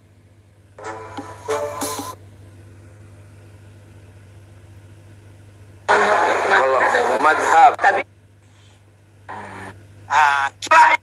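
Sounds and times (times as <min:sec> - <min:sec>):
steady low hum: 0:00.0 - 0:11.0
music passage: 0:00.8 - 0:02.2
loud speech: 0:05.9 - 0:08.1, 0:09.3 - 0:11.0.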